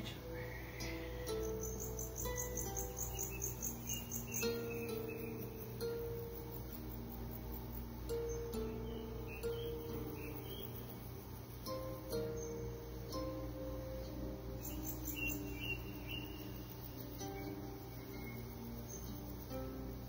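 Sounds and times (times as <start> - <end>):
calm background music: 0.0 - 20.0
fast high chirping: 0.0 - 20.0.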